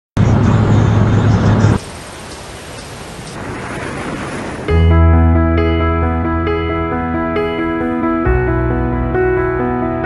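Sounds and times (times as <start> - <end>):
vehicle travelling along road: 0.2 - 3.8
loud low rumble: 4.7 - 10.0.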